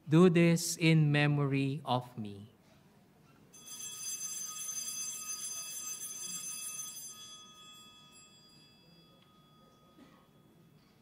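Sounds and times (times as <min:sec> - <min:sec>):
altar bell ringing: 0:03.5 - 0:11.0.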